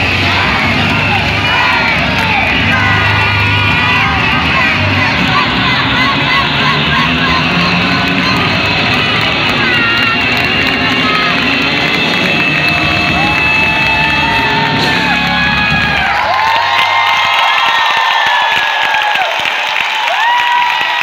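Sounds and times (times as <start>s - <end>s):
live band playing: 7.5s - 16.6s.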